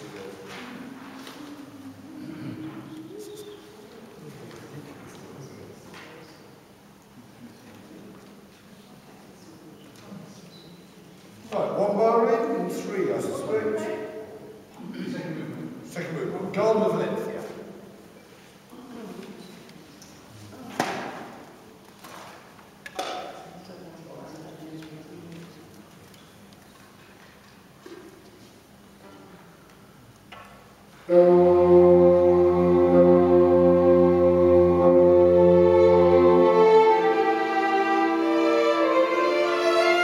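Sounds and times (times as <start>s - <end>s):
low room noise: 0.0s - 40.0s.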